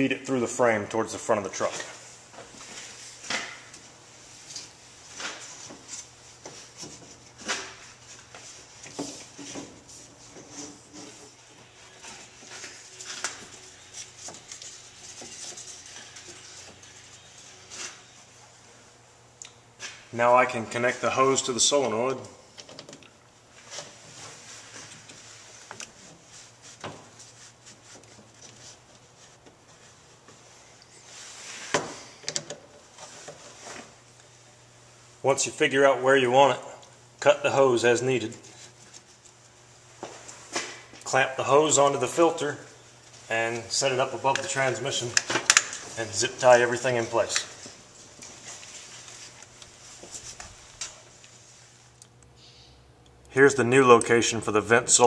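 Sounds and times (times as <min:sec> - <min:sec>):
rubber hose rustling: 0:01.6 - 0:18.4, 0:23.5 - 0:32.1, 0:43.0 - 0:51.9.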